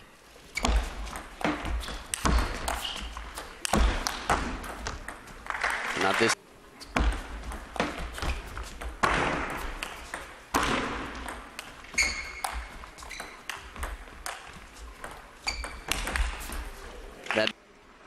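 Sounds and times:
table tennis ball pocks: 6.9 - 16.8.

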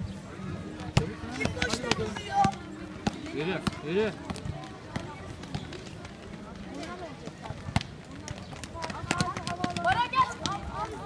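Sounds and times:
basketball bouncing: 0.8 - 5.8, 7.6 - 10.6.

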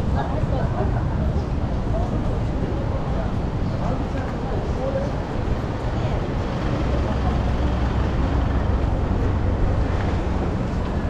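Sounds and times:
crowd hubbub: 0.0 - 11.0
truck engine running: 5.6 - 11.0.

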